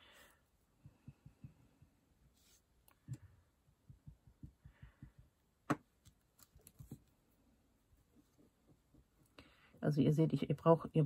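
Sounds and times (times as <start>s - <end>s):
soft taps and knocks: 0.8s - 7.1s.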